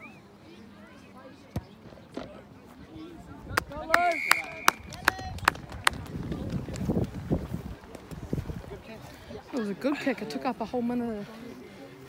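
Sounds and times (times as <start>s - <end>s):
sharp handclaps: 3.6s - 6.9s
referee's whistle: 4.0s - 4.9s.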